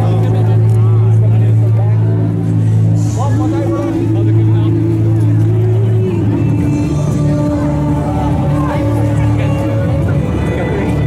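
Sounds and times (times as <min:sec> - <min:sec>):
crowd chatter: 0:00.0 - 0:11.0
music over loudspeakers: 0:00.0 - 0:11.0.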